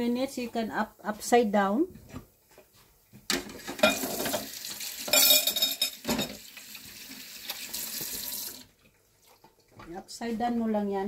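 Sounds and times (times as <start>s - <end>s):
meat patties sizzling in oil: 3.4s - 8.7s.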